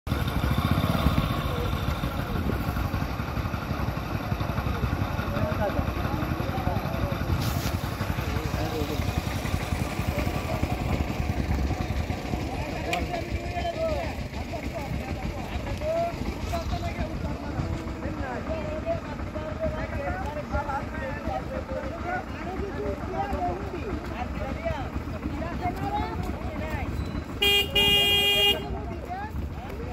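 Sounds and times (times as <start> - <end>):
people talking: 0.9 - 29.9.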